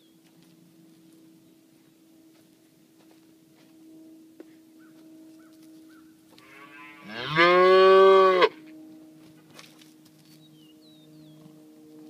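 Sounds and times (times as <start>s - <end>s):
calf mooing: 6.4s - 8.7s.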